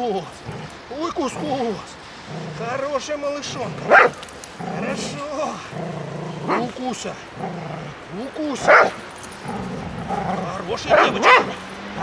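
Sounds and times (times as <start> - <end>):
dog crying: 3.8 - 4.2
dog growling and whining: 9.4 - 12.0.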